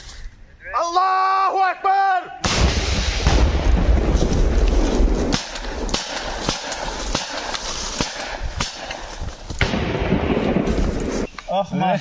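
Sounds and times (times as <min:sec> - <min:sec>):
man shouting: 0:00.6 - 0:02.4
rocket launcher blast: 0:02.4 - 0:04.2.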